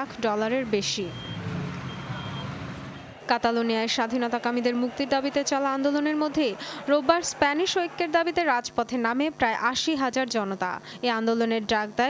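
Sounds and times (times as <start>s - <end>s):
low street rumble: 0.0s - 8.5s
short high beeps: 1.1s - 2.6s.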